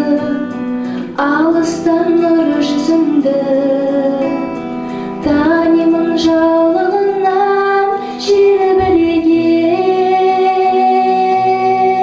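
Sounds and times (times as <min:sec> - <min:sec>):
instrumental backing music: 0:00.0 - 0:12.0
woman singing into microphone: 0:00.0 - 0:12.0.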